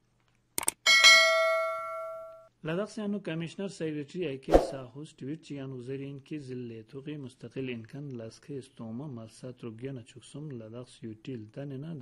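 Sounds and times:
bell-like chime: 0.9 - 2.5.

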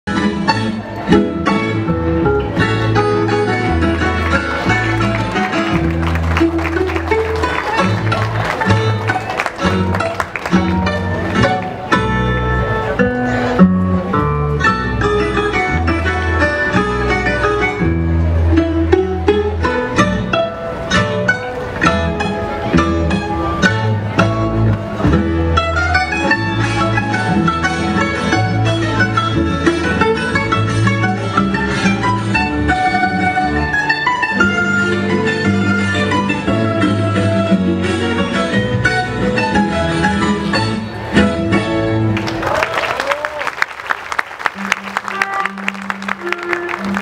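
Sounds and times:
string band folk dance music: 0.1 - 42.7, 43.6 - 47.0.

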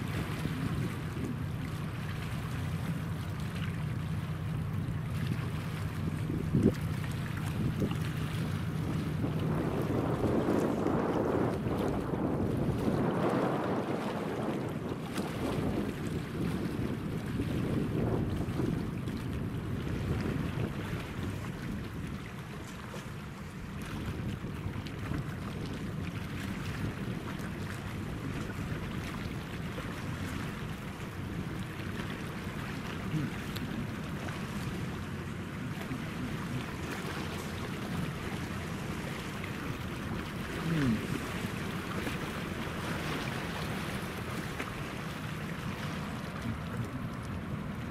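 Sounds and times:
choppy river water lapping: 0.0 - 47.9
wind buffeting microphone: 0.0 - 47.9.

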